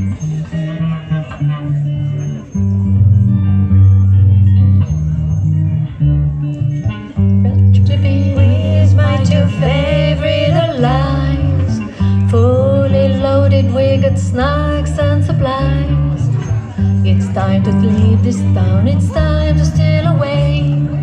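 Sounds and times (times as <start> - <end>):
electric guitar: 0.0 - 21.0
keyboard chords: 0.0 - 21.0
woman singing: 7.5 - 16.4, 17.0 - 21.0.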